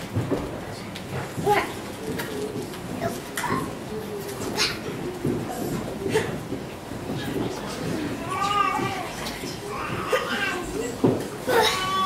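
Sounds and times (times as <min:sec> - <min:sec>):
children's high-pitched voices: 0:01.5 - 0:05.1.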